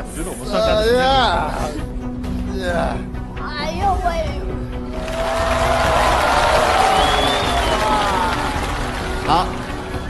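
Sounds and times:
audience cheering and applauding: 5.0s - 10.0s.

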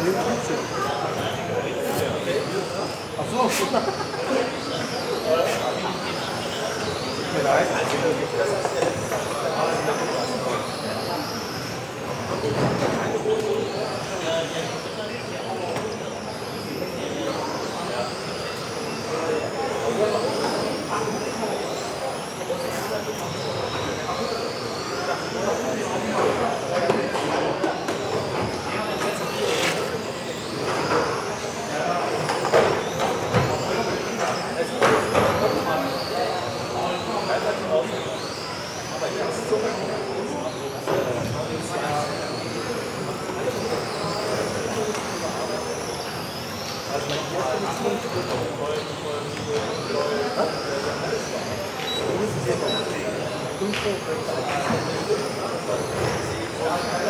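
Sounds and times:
murmur of voices: 0.0s - 57.0s
rc car motors whining: 0.0s - 57.0s.

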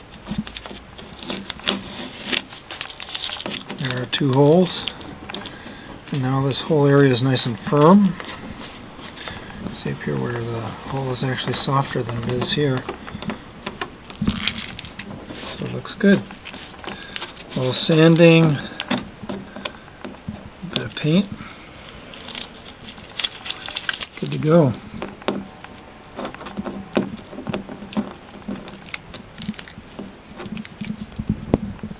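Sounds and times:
short rustle: 0.0s - 31.9s
fingers tapping fiberglass: 7.7s - 15.4s, 16.1s - 20.9s, 25.0s - 31.9s.

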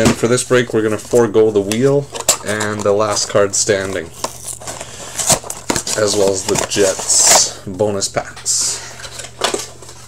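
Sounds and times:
card packs rustling and crinkling: 0.0s - 10.0s.

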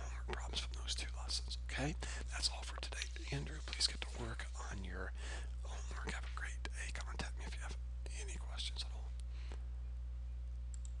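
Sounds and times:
faint whispering: 0.0s - 9.2s
steady low hum: 0.0s - 11.0s.

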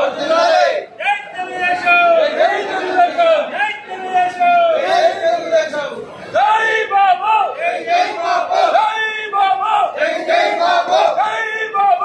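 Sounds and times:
crowd of men shouting slogans: 0.0s - 12.0s.

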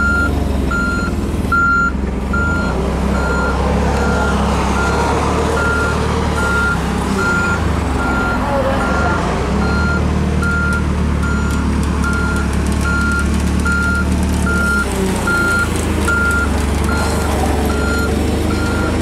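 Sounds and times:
engine droning: 0.0s - 19.0s
reversing alarm beeping: 0.0s - 19.0s.

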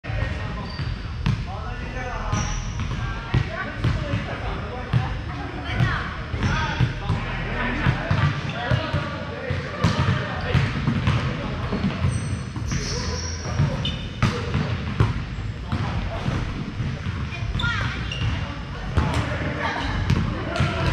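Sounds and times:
chatter and calls of players: 0.0s - 20.9s
volleyballs hit and bouncing: 2.8s - 20.9s.

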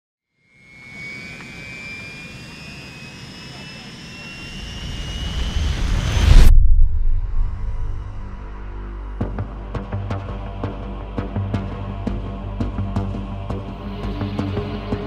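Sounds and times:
rising tones: 0.4s - 9.3s
low rumble drone: 0.7s - 15.0s.

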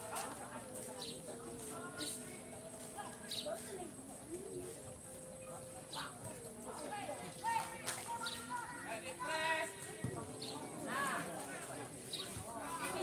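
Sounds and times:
people calling and shouting: 0.0s - 13.0s.

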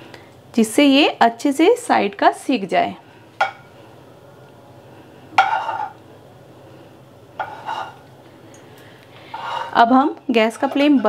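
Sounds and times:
low steady hum: 0.0s - 11.0s
metal spatula scraping frying pan: 5.4s - 6.0s, 7.4s - 8.1s, 9.3s - 11.0s.

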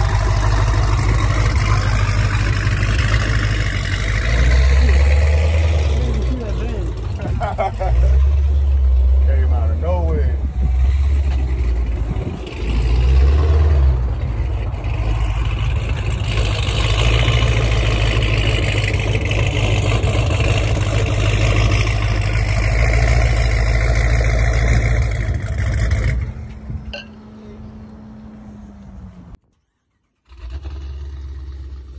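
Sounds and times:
deep car exhaust note: 0.0s - 27.6s.

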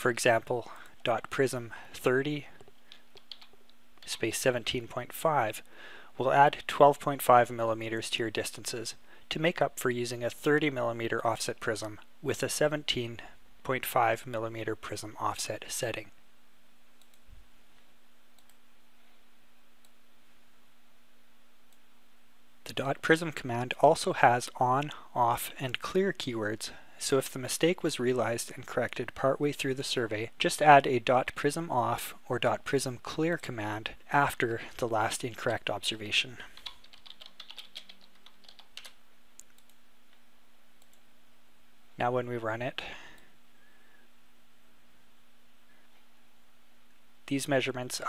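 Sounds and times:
low hum and hiss: 0.0s - 48.0s
computer mouse clicks: 2.6s - 4.1s, 17.0s - 17.3s, 18.4s - 18.6s, 36.6s - 40.2s.

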